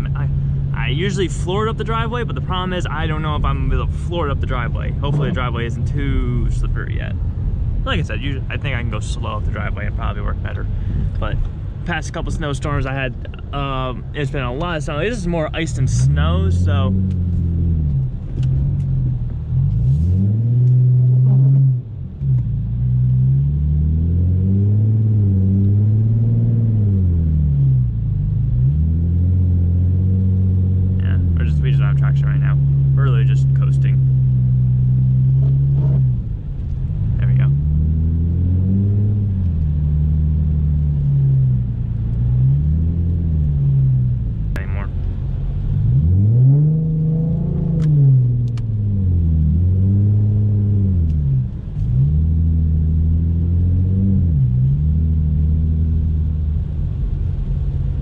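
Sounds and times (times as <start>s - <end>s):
car engine revving: 0.0s - 58.0s.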